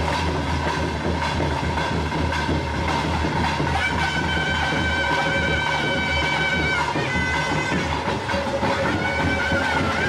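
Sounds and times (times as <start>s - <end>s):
crowd: 0.0s - 10.0s
reed wind instrument melody: 3.3s - 10.0s.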